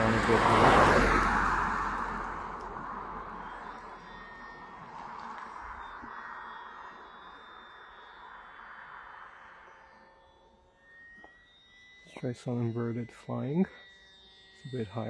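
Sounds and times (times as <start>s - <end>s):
car road noise: 0.0s - 10.2s
model plane motor whine: 0.0s - 15.0s.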